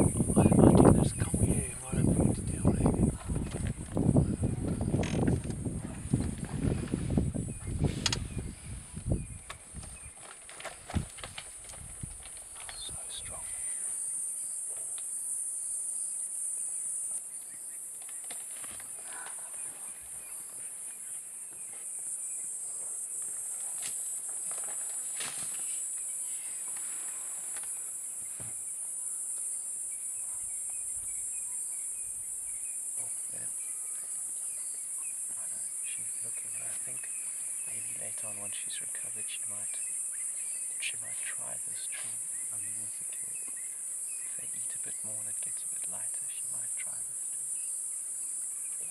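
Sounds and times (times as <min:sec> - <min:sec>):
low rumbling and thumps: 0:00.0 - 0:10.2
insects chorus: 0:00.0 - 0:48.9
knocks scrapes and rustles: 0:22.8 - 0:25.8.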